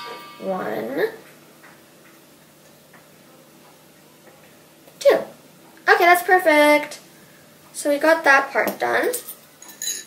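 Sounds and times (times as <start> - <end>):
metal spoons ticking: 9.2 - 10.0.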